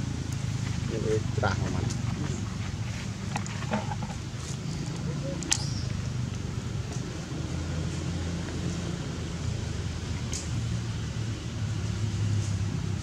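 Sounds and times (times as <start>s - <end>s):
low engine-like hum: 0.0s - 13.0s.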